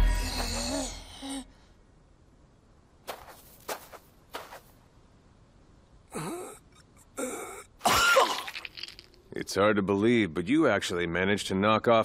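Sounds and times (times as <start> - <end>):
man groaning and gasping: 6.1 - 7.7.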